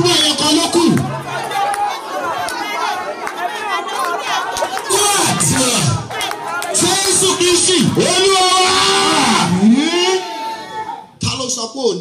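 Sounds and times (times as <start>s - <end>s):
crowd chattering and calling out: 0.0s - 11.2s.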